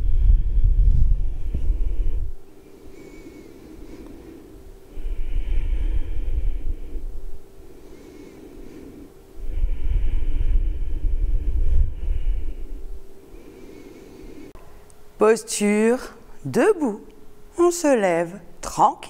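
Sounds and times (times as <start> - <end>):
breath blowing on microphone: 0.0 - 14.6
faint steady hum: 0.0 - 19.0.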